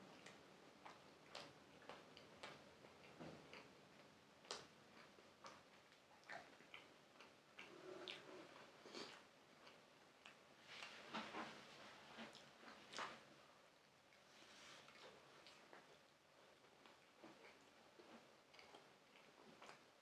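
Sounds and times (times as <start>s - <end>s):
chewing food: 0.0s - 13.4s, 14.0s - 20.0s.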